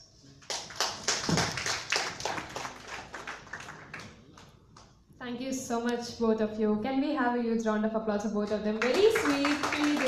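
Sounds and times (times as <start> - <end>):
audience applauding: 0.4 - 4.4, 8.8 - 10.0.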